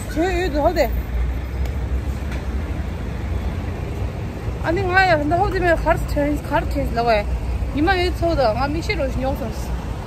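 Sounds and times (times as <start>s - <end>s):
woman's voice: 0.0s - 1.0s, 4.6s - 9.8s
road traffic rumble: 0.0s - 10.0s.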